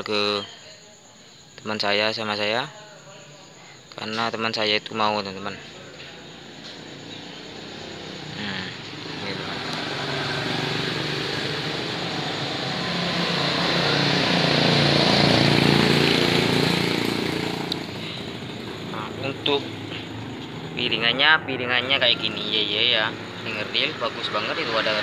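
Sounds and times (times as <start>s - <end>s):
vehicle passing by: 5.8s - 25.0s.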